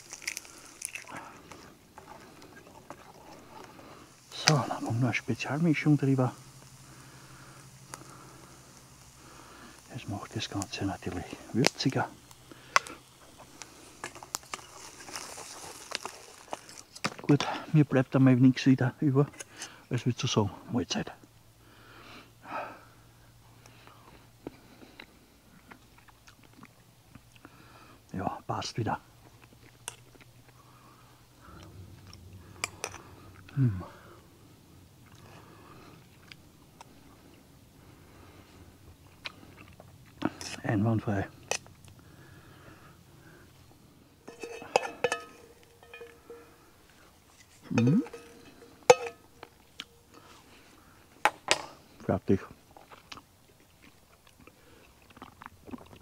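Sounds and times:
faint chewing: 0:00.0 - 0:05.1, 0:06.2 - 0:17.6, 0:23.5 - 0:28.2, 0:29.1 - 0:56.0
cutlery clinking on frying pan: 0:44.3 - 0:46.6, 0:47.7 - 0:49.5.

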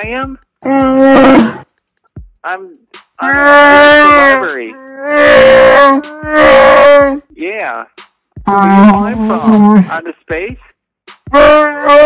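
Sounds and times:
creature roar from soundboard: 0:00.6 - 0:01.6, 0:03.2 - 0:07.2.

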